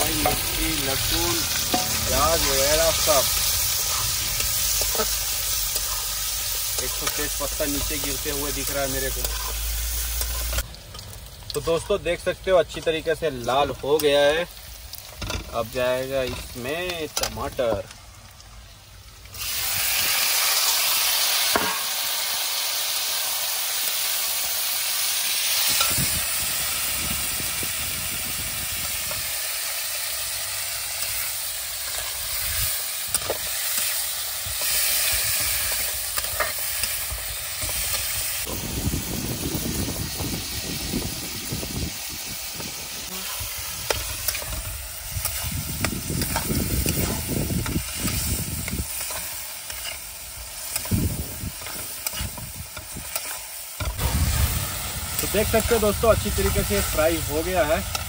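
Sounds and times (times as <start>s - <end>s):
tomatoes sizzling in a pan: 0.0s - 58.0s
spatula scraping a metal pan: 8.6s - 9.6s, 49.0s - 50.1s, 51.6s - 53.4s.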